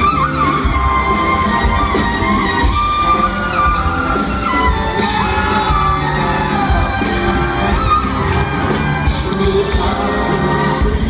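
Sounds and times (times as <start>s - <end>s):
horn section: 0.0s - 11.0s
swing big band playing: 0.0s - 11.0s
crowd shouting and whooping: 2.9s - 9.6s.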